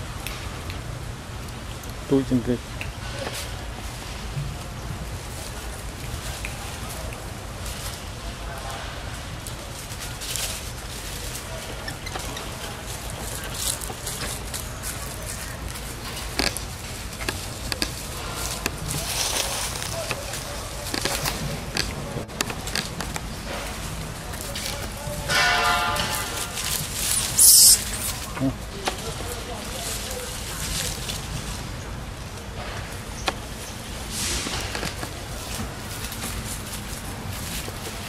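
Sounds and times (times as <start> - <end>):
dry leaves crackling and rustling: 3.1 - 38.0
short pitched animal call: 27.2 - 28.2.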